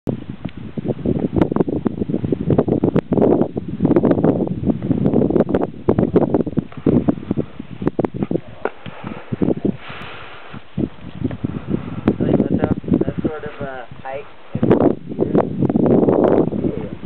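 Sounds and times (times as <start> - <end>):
wind buffeting microphone: 0.0 - 17.0
sharp microphone pops: 6.0 - 11.5.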